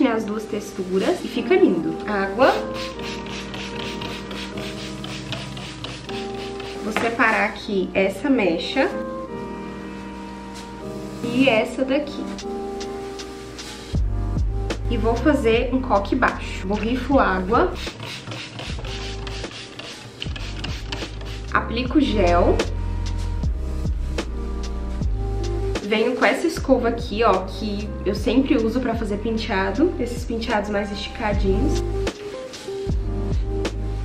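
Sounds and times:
soft background music: 0:00.0 - 0:34.0
spray bottle misting water: 0:02.2 - 0:07.4, 0:16.7 - 0:21.6.

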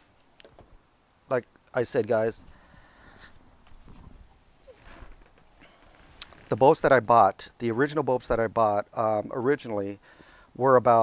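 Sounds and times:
shuffling in fabric camp chair: 0:03.2 - 0:06.7
chair squeak: 0:03.9 - 0:06.6.

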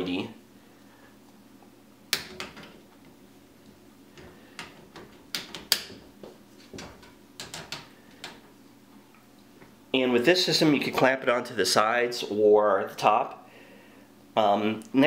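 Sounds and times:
plastic clicks and knocks: 0:04.2 - 0:08.4.

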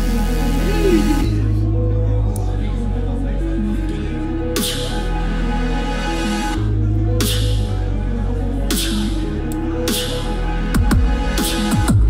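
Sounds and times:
deep sustained bass line: 0:00.0 - 0:12.0
bending pitched vocal line: 0:00.5 - 0:01.4
layered beatbox vocal loops: 0:07.2 - 0:07.6, 0:08.7 - 0:09.2, 0:09.9 - 0:10.2.

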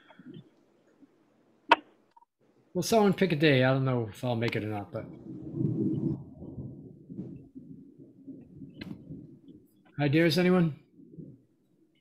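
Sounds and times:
low muffled rumble: 0:04.4 - 0:09.8.

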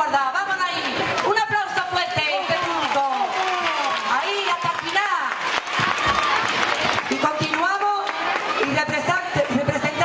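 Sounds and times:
crowd noise: 0:00.0 - 0:10.0
people clapping: 0:00.9 - 0:09.8.

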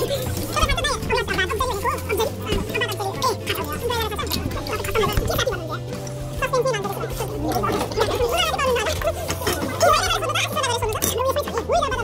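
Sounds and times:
background music: 0:00.0 - 0:12.0
men laughing and talking: 0:00.0 - 0:12.0.

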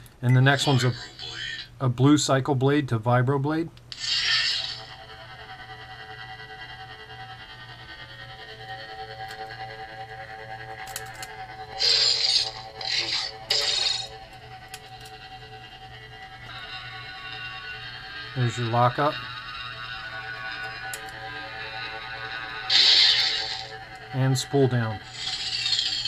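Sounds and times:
lightsaber electric hum: 0:00.0 - 0:26.0
lightsaber igniting: 0:03.9 - 0:04.9, 0:11.7 - 0:14.2, 0:22.7 - 0:26.0
short lightsaber effect sounds: 0:03.9 - 0:04.9.

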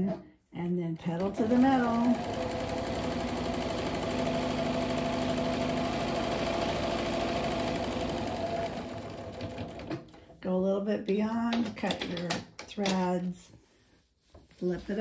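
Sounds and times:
electric sewing machine stitching: 0:01.0 - 0:10.1.

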